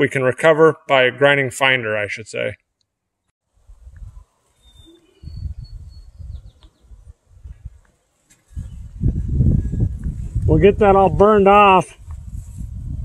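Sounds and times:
faint high bird chirps: 4.5s - 7.0s
wind buffeting microphone: 5.2s - 7.8s, 8.5s - 13.0s.

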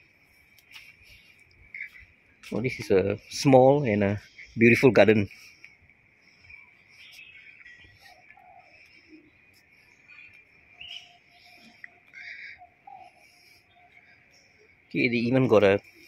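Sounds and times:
bird chirps: 0.2s - 16.0s.

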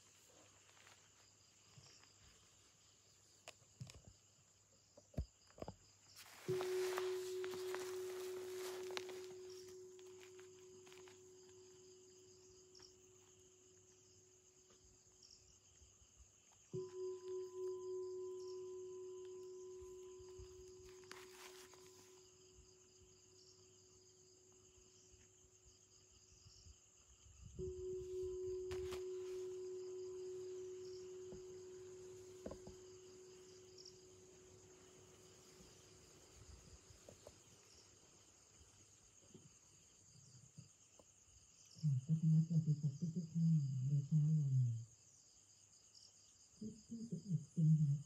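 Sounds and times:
crickets chirring: 0.0s - 48.0s
bell ringing: 6.5s - 11.8s, 16.8s - 22.1s, 27.6s - 34.6s.

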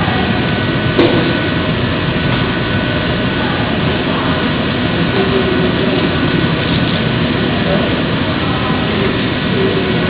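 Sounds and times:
machinery hum: 0.0s - 10.0s.

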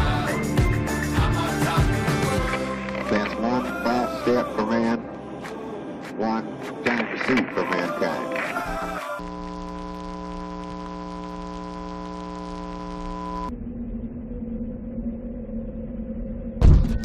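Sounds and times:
buzzy electronic tone: 6.9s - 14.8s
low steady hum: 9.2s - 17.0s
loud thump: 16.6s - 17.0s.

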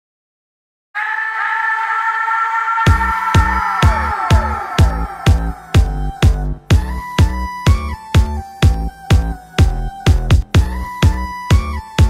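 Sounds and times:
sustained electronic chord: 3.0s - 6.8s.

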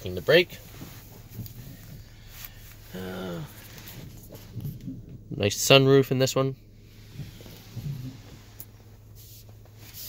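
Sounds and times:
low hum in vehicle cabin: 0.0s - 10.0s.

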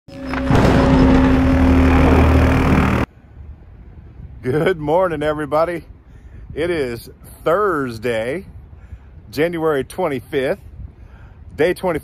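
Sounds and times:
dense noise with held tone: 0.1s - 3.9s
faint outdoor background: 0.1s - 12.0s.

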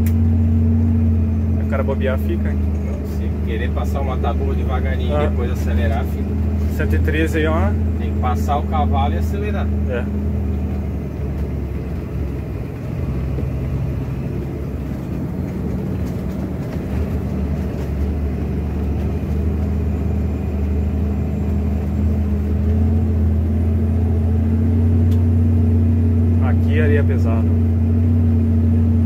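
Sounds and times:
diesel truck engine under load: 0.0s - 29.0s.

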